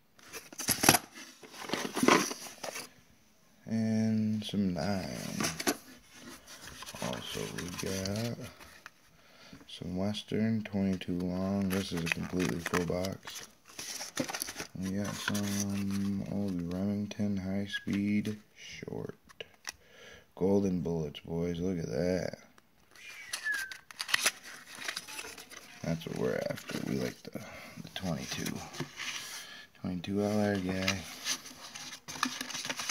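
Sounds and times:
card rubbing on card squeak: 23.0s - 23.9s.

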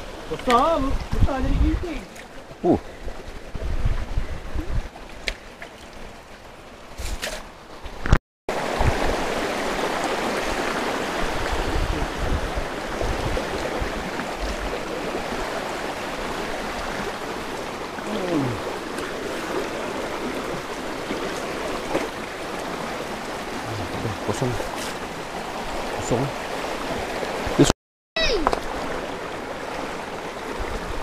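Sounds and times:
stream rushing over stones: 0.0s - 31.0s.

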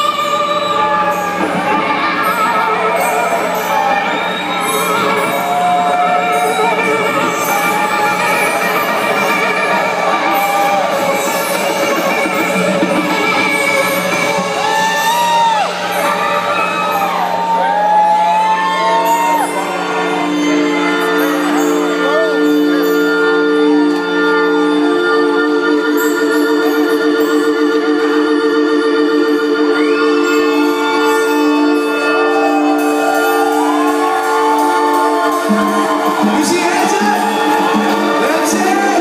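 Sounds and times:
high held sliding notes: 0.0s - 39.0s
live rock band playing: 31.5s - 39.0s.

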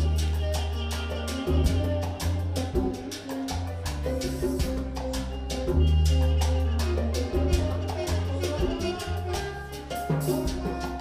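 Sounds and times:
conga drum strokes: 0.0s - 11.0s
deep bass line: 0.0s - 11.0s
latin band playing: 0.0s - 11.0s.

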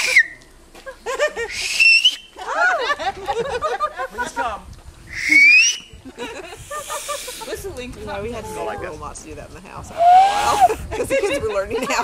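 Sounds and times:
man whistling with hand: 0.0s - 0.4s, 1.5s - 2.3s, 5.1s - 5.9s
laughter: 0.8s - 1.6s, 2.4s - 4.6s, 5.3s - 7.6s, 10.4s - 12.0s.

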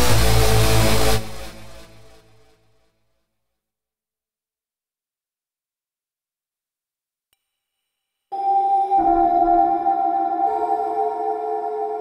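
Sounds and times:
synthesizer held chord: 8.4s - 12.0s.

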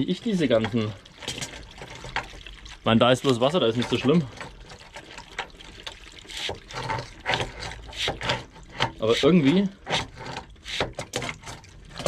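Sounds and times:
water splashing from hose: 0.0s - 12.0s.

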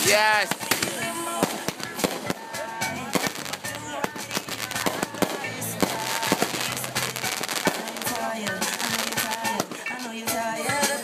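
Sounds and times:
fireworks bangs and crackles: 0.0s - 11.0s
music playing: 0.0s - 11.0s.

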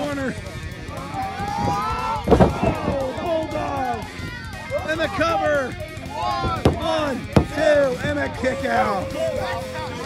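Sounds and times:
background music: 0.0s - 10.0s
people shouting: 0.0s - 10.0s.

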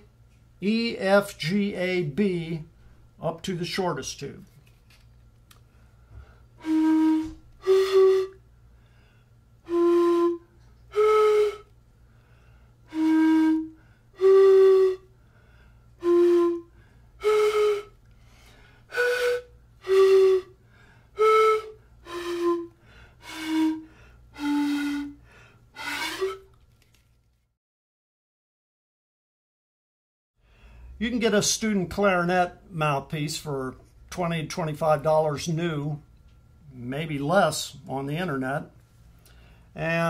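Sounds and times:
breathy pan pipe notes: 6.2s - 26.5s.

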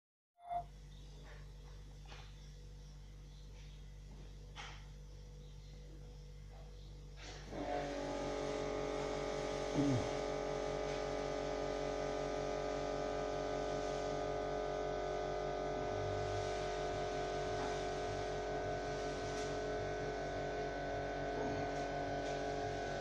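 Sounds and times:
machine hum of several tones: 0.4s - 23.0s
low electrical buzz: 0.5s - 23.0s
person humming: 9.7s - 10.1s.

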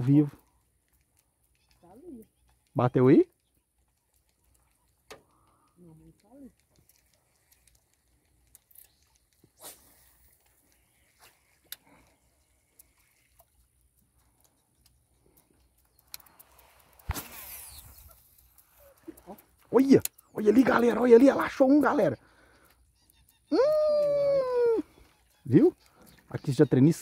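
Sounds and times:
faint clicks: 0.4s - 24.2s.

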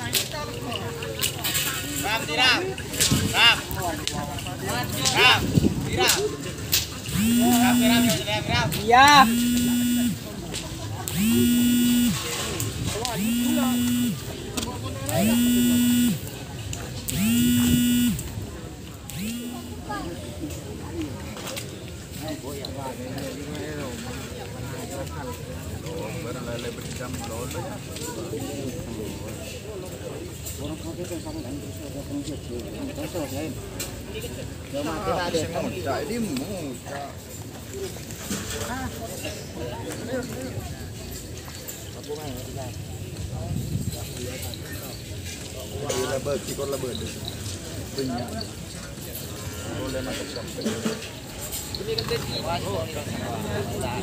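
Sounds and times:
faint voices: 0.0s - 54.0s
steady outdoor noise: 0.0s - 54.0s
indistinct voices talking: 7.0s - 16.5s, 17.1s - 18.4s, 19.0s - 20.4s
horn-like tone blasts: 7.1s - 8.2s, 9.2s - 10.2s, 11.1s - 12.3s, 13.1s - 14.3s, 15.2s - 16.3s, 17.1s - 18.3s, 19.1s - 19.8s.

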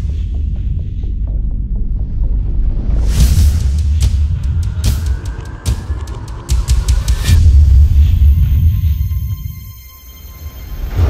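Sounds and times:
deep low drone: 0.0s - 11.0s.

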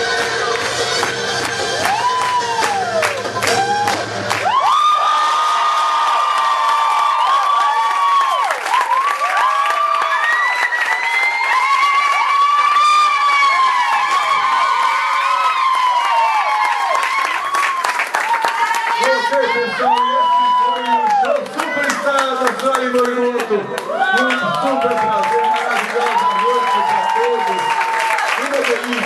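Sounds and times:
music: 0.0s - 4.6s
audience cheering and whooping: 0.0s - 29.0s
clapping: 0.5s - 29.0s.

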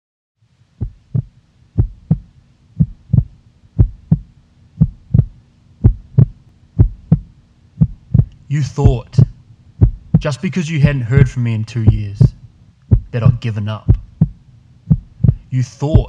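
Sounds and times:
steady low hum: 0.4s - 16.0s
heartbeat thumps: 0.8s - 16.0s.

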